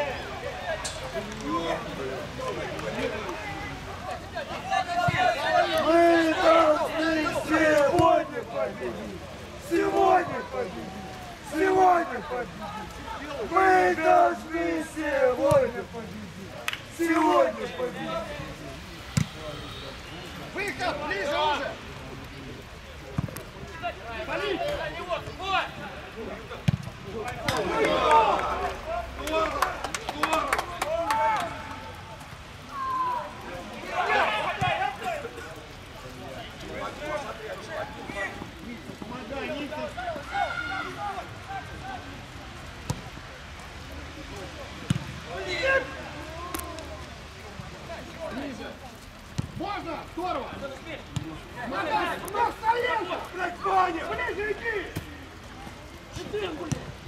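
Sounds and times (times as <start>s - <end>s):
people calling and shouting: 0.0s - 57.0s.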